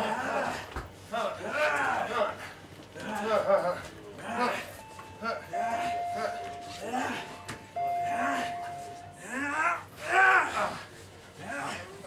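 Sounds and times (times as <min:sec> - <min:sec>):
steady beep tone: 0:04.8 - 0:09.6.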